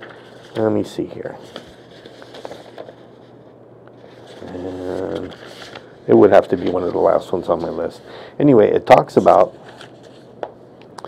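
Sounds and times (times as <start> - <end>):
paper rustling: 0.0 - 8.1, 8.8 - 10.4.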